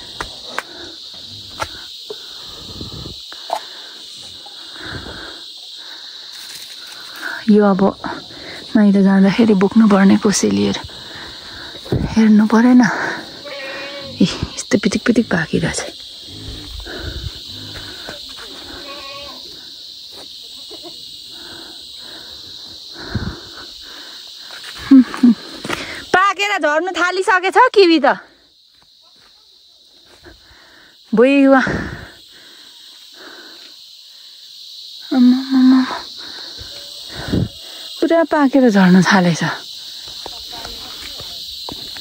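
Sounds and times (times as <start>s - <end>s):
high-pitched insect chorus: 0.0s - 42.0s.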